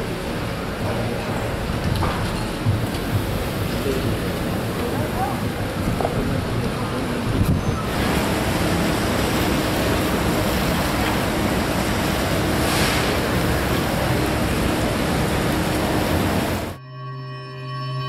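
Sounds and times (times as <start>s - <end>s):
wind on microphone: 5.4s - 8.1s.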